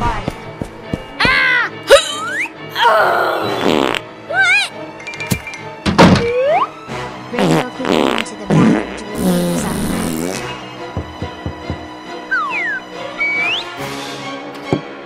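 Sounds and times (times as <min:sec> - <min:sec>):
background music: 0:00.0 - 0:15.0
cartoon fart sound effects: 0:03.4 - 0:04.0, 0:07.4 - 0:10.5
rising whistle: 0:12.4 - 0:13.8.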